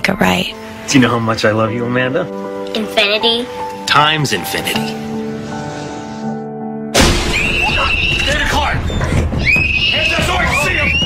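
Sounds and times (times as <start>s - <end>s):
soft music with held notes: 0.0s - 7.0s.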